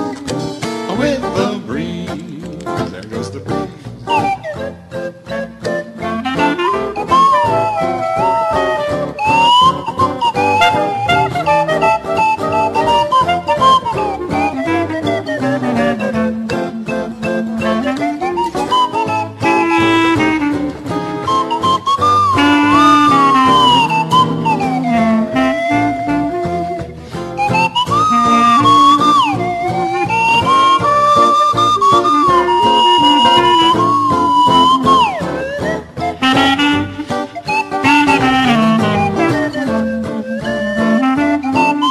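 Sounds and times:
acoustic band with washboard: 0.0s - 41.9s
slide whistle melody: 4.1s - 41.9s.

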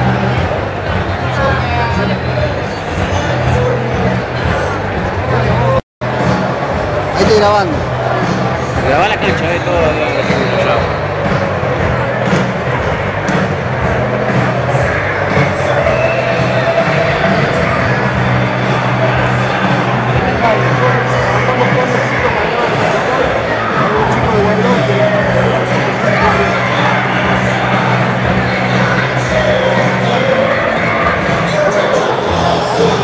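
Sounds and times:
large crowd noise: 0.0s - 33.0s
loud amplified concert music: 0.0s - 33.0s.

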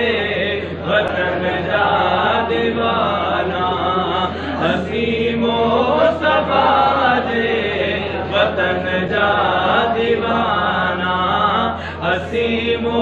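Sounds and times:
men singing unaccompanied: 0.0s - 13.0s.

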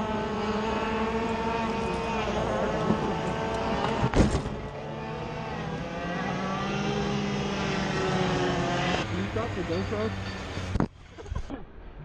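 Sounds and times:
go-kart engines running: 0.0s - 12.0s.

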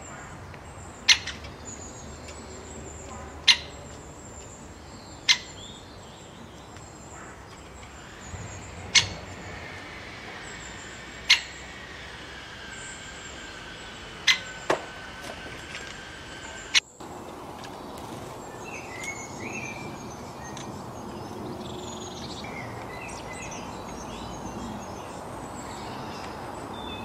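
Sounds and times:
small birds chirping: 0.0s - 27.0s
woodpecker kik calls: 1.0s - 2.4s, 6.7s - 11.8s, 13.4s - 15.1s.

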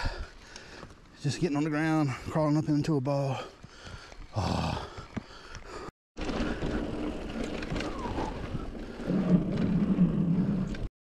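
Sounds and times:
bike tyres on gravel trail: 2.9s - 10.9s
bike rattling: 6.2s - 10.9s.

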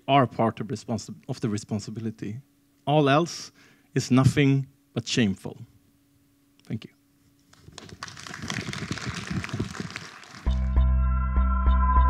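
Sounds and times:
audience applauding: 7.5s - 10.7s.

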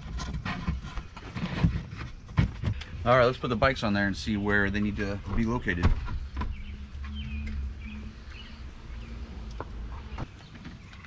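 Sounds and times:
small birds chirping: 2.7s - 11.0s
low steady rumble: 2.8s - 10.3s.

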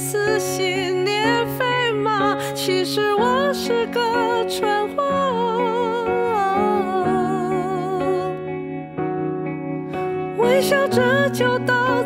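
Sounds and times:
pop ballad accompaniment: 0.0s - 12.0s.

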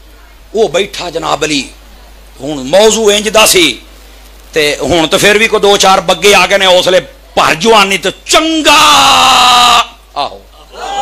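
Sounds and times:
man speaking: 0.5s - 1.8s, 2.4s - 3.9s, 4.5s - 8.8s
man exclaiming: 8.5s - 11.0s.

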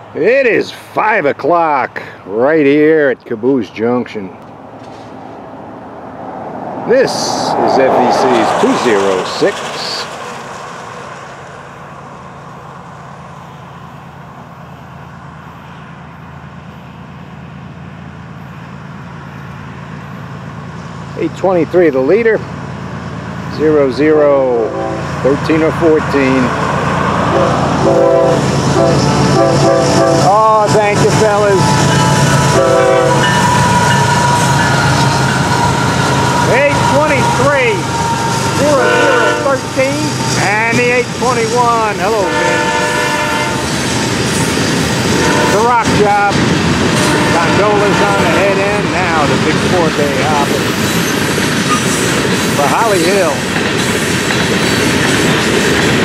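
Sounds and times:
diesel locomotive engine drone: 0.0s - 56.0s
distant freight train running: 0.0s - 56.0s
train horn: 24.4s - 25.2s, 27.3s - 30.5s, 31.4s - 39.6s, 42.0s - 43.8s, 45.1s - 46.0s, 47.0s - 48.6s
high whine: 27.2s - 50.8s.

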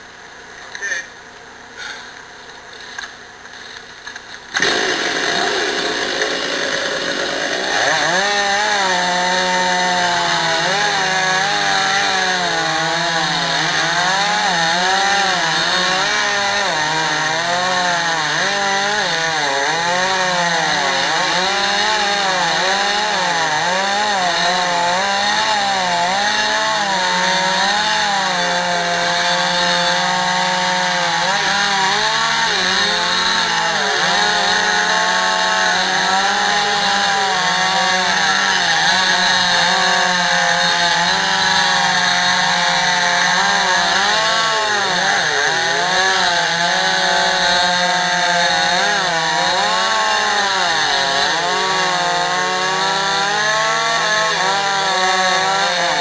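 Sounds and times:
chainsaw cutting wood: 1.8s - 56.0s.

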